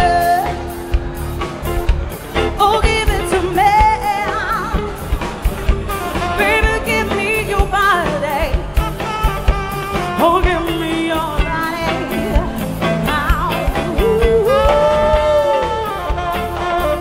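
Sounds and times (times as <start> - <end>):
woman singing lead: 0.0 - 1.1, 2.4 - 17.0
live band playing: 0.0 - 17.0.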